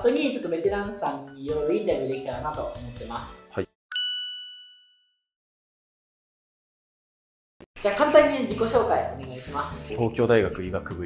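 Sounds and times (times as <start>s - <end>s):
bright chime ding: 3.9s - 5.2s.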